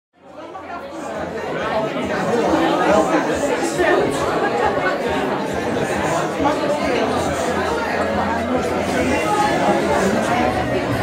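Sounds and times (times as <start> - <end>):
audience chatter: 0.2 - 11.0.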